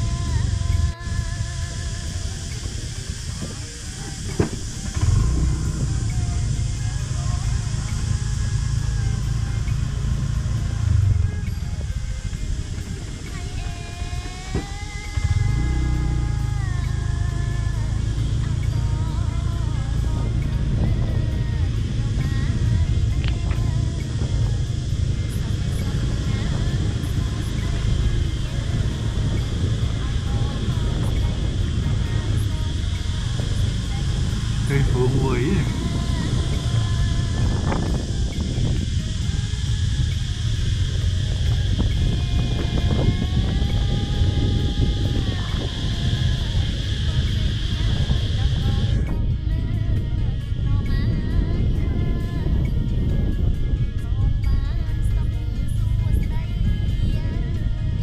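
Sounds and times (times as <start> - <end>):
faint music: 0.0 - 58.0
faint voices: 0.0 - 58.0
motorbike engine rumble: 0.0 - 58.0
wind on microphone: 0.0 - 58.0.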